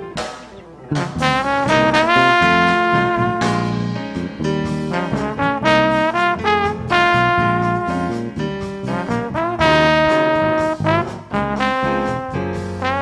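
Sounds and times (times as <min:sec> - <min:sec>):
drum kit: 0:00.0 - 0:13.0
electric bass: 0:00.0 - 0:13.0
piano: 0:00.0 - 0:13.0
trombone playing melody: 0:00.0 - 0:13.0.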